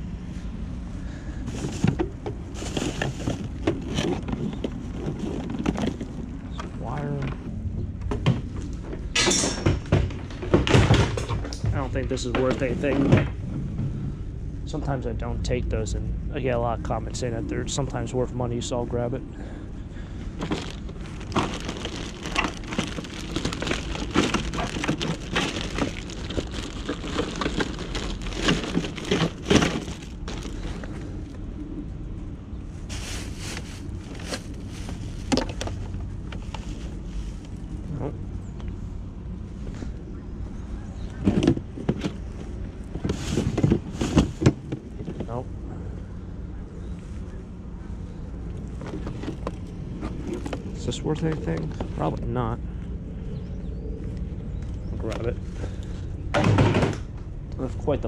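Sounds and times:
steady low rumble: 0.0s - 58.0s
plastic trash bags rustling: 1.5s - 6.4s, 20.3s - 31.3s, 32.8s - 37.8s, 42.2s - 45.0s
plastic items clattering: 1.5s - 6.6s, 20.4s - 31.3s, 32.9s - 37.0s, 41.2s - 45.4s.

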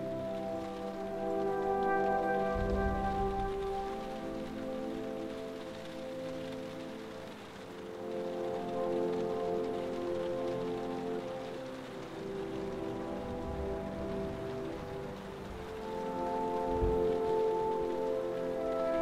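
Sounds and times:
rain falling: 0.0s - 19.0s
slow music of held chords: 0.0s - 19.0s.

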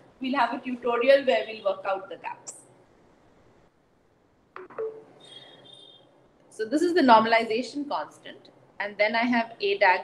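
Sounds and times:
high-pitched electronic beep: 4.6s - 6.0s.

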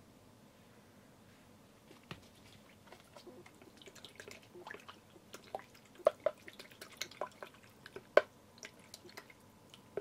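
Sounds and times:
water splashes and drips: 2.9s - 10.0s.

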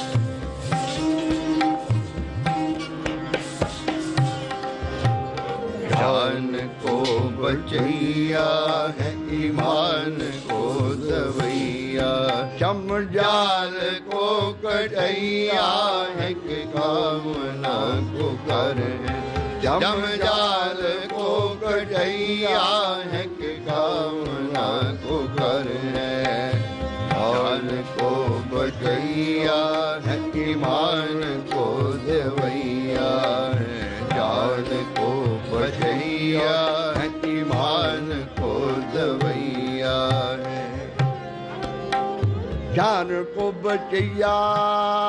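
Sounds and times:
harmonium: 0.0s - 45.0s
tabla: 0.0s - 45.0s
man singing: 5.3s - 45.0s.

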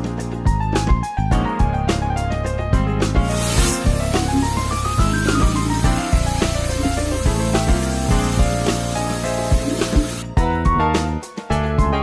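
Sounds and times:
background music with a beat: 0.0s - 12.0s.

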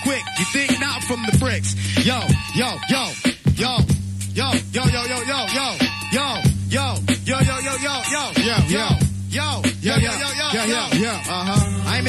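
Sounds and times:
hip hop beat: 0.0s - 12.0s.

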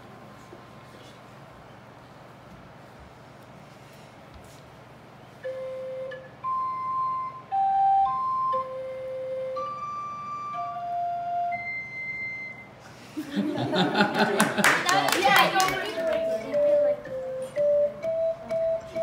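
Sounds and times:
flute-like organ pipe notes: 5.4s - 12.8s, 15.9s - 19.0s.

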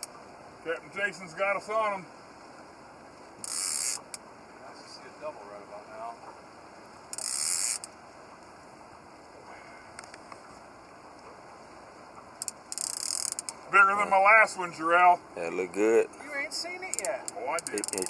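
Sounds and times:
fishing reel drag buzzing: 3.4s - 4.2s, 7.1s - 8.0s, 12.4s - 13.6s, 16.8s - 18.0s.

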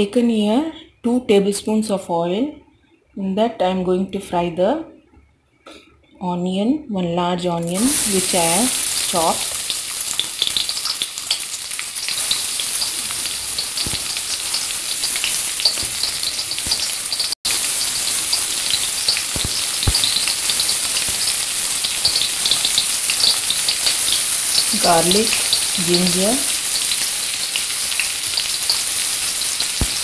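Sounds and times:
onion sizzling in hot oil: 7.7s - 30.0s.

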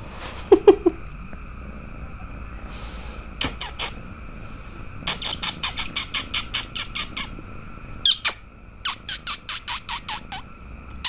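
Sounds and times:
squeaky kissing noises: 3.4s - 4.0s, 5.1s - 7.4s, 8.0s - 10.4s.

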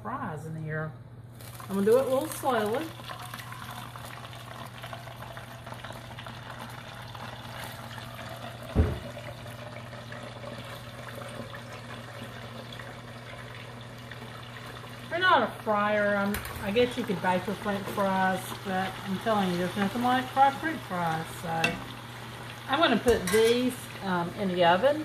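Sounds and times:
hot oil bubbling and sizzling: 1.4s - 25.0s
dull thump: 8.8s - 9.1s.

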